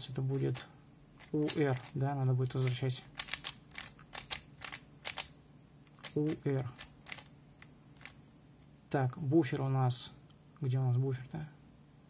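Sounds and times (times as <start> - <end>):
puzzle cube clicking: 1.2 - 2.0, 2.6 - 5.3, 5.9 - 8.2.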